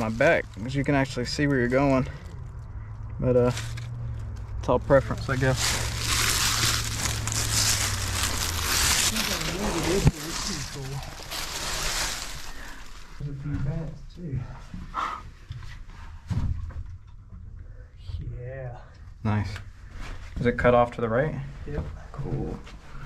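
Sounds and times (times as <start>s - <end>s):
leaves and dirt rustling: 0.0s - 2.6s, 3.2s - 13.4s
person's voice: 8.9s - 11.3s.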